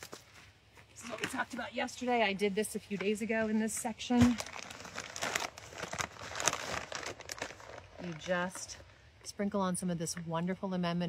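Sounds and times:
plastic bag crinkling: 4.2s - 8.9s.

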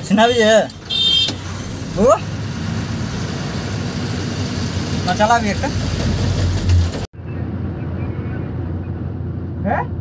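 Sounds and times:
truck engine rumble: 0.0s - 10.0s.

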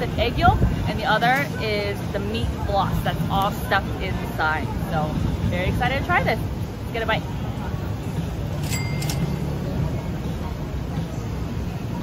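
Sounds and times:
street rumble: 0.0s - 12.0s.

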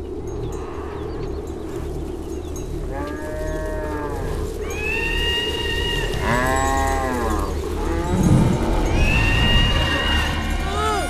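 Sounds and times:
cows mooing: 2.8s - 11.0s
low rumble: 6.1s - 11.0s.

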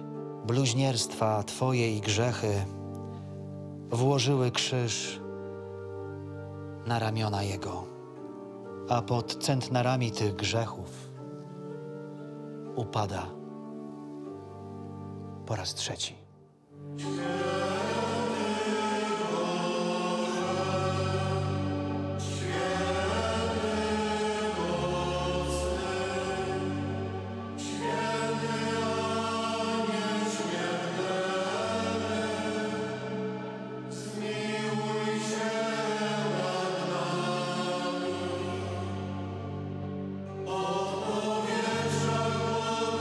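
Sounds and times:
choir singing a hymn: 16.8s - 43.0s.

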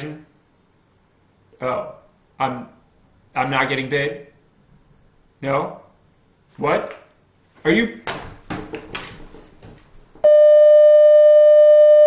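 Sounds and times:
broadcast test tone: 10.3s - 12.0s.

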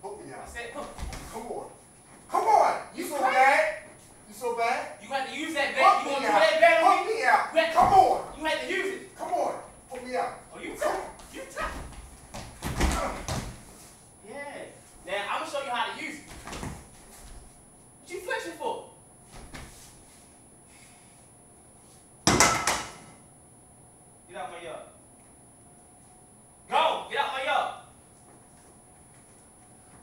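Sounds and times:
men shouting and grunting: 5.5s - 9.7s, 10.6s - 12.0s, 12.8s - 13.6s
feet thudding on wooden floor: 11.0s - 13.7s.

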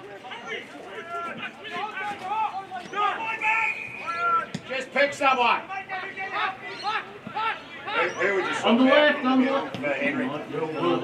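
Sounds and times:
crowd shouting and calling: 0.0s - 11.0s.

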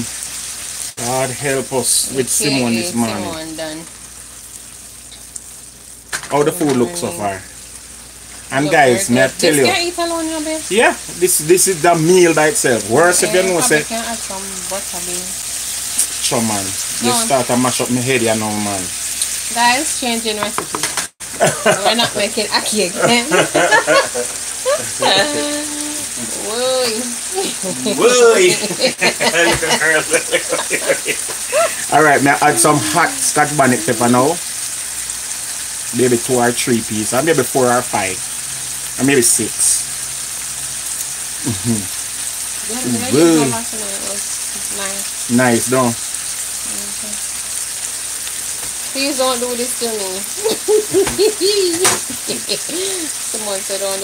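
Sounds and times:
food sizzling in a frying pan: 0.0s - 54.0s
person making wordless sounds: 21.4s - 34.4s, 41.4s - 41.9s, 42.7s - 43.6s
person's voice rising and falling: 22.8s - 34.4s, 41.4s - 41.9s, 42.7s - 43.6s.

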